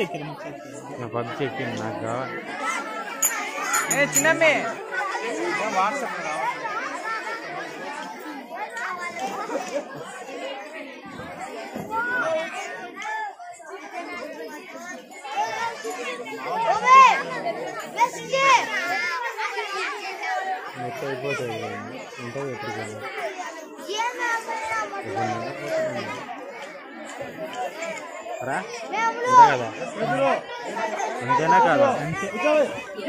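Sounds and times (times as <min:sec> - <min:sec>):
children chattering and calling out: 0:00.0 - 0:33.0
children shouting high-pitched: 0:02.4 - 0:33.0.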